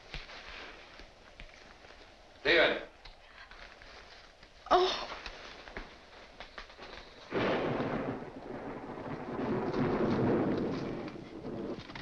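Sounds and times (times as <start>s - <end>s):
thunder rumbling: 6.8s - 12.0s.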